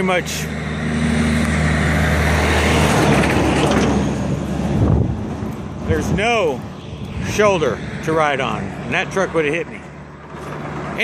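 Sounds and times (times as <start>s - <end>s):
truck engine hum: 0.0s - 11.0s
tyre and air rush: 0.5s - 11.0s.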